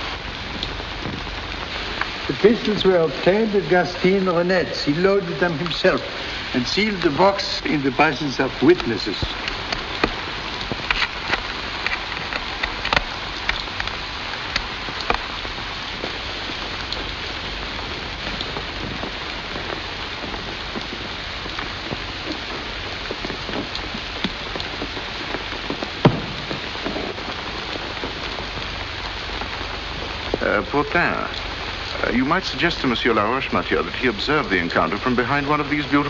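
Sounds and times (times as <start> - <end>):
steady rain falling: 0.0 - 36.0
sharp knock: 26.0 - 27.2.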